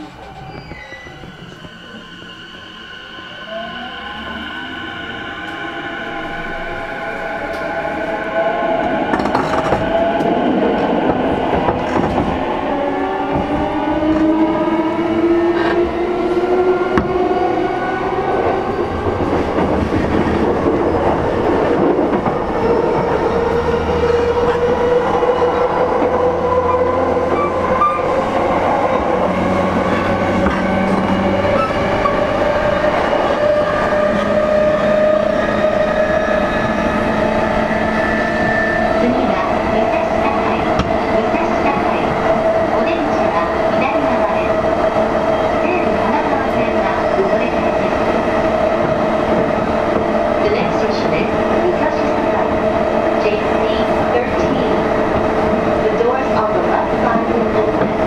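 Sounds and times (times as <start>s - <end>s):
wheels rumbling on rail: 8.8s - 58.0s.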